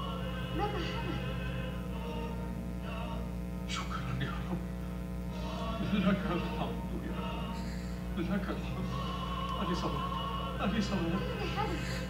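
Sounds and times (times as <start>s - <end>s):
low steady hum: 0.0s - 12.0s
television soundtrack music: 0.0s - 12.0s
voices from speakers: 0.0s - 12.0s.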